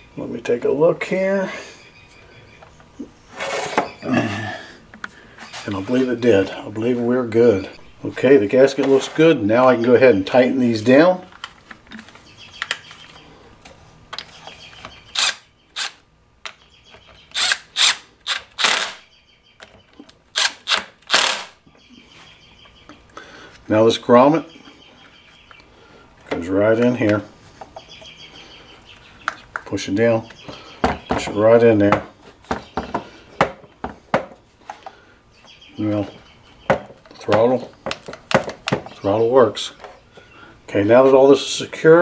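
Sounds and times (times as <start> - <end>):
cordless impact driver bursts: 15.1 - 16.0, 17.3 - 19.0, 20.3 - 21.6.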